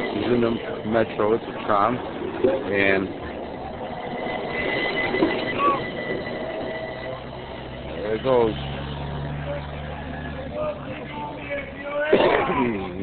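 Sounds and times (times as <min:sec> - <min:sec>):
vehicle engine idling hum: 0:00.0 - 0:12.1
chatter of passers-by: 0:00.0 - 0:13.0.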